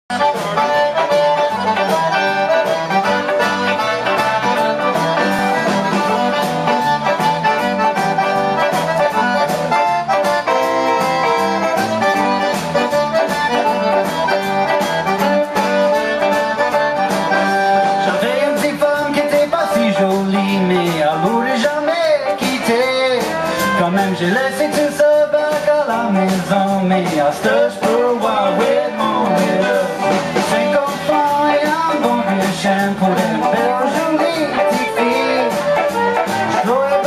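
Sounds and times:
button accordion: 0.1 - 37.0
live band playing: 0.1 - 37.0.

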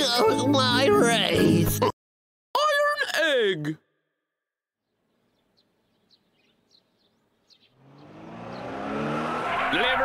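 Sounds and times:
truck engine approaching: 7.7 - 10.0.

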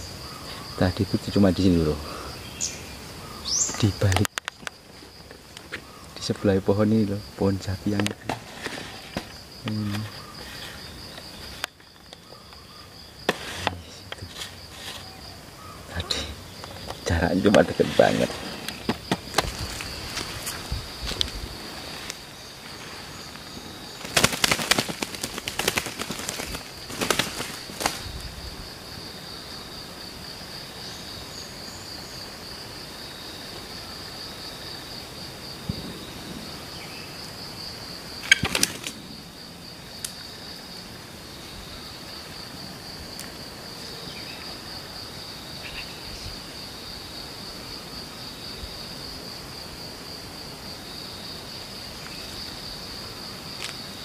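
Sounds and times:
high insect drone: 0.0 - 54.0
bird wings flapping: 24.0 - 28.2, 38.2 - 39.0.

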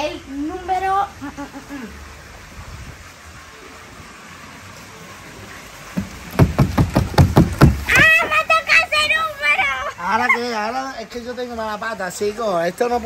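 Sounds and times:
steady noisy hiss: 0.0 - 13.0
hand slapping cardboard box: 6.0 - 8.0.

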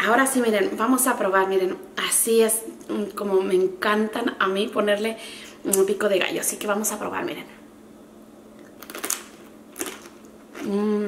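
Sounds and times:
crunchy chip being chewed: 8.6 - 10.8.

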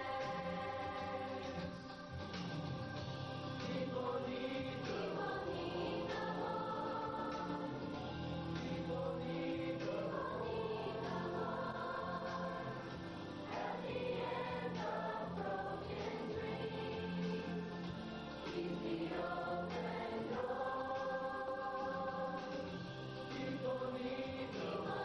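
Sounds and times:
youth choir singing: 0.0 - 1.9, 3.5 - 25.0.

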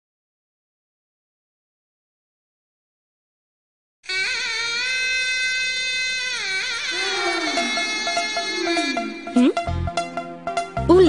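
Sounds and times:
double-reed pipe playing: 4.0 - 10.0.

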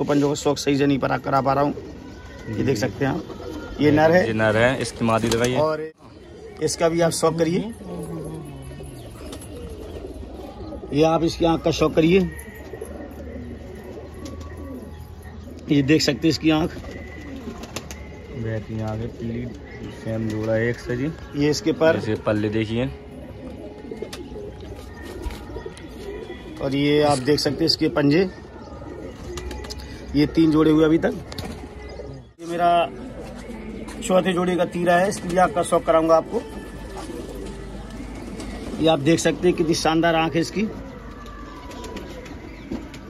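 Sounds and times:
pigeon cooing: 0.0 - 43.0
man speaking: 2.5 - 6.0, 26.6 - 28.3.

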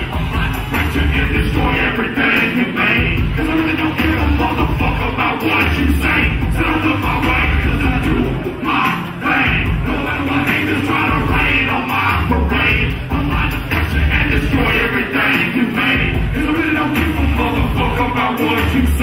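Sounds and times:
hip-hop beat with heavy bass: 0.0 - 19.0
person rapping into a microphone: 0.0 - 19.0.

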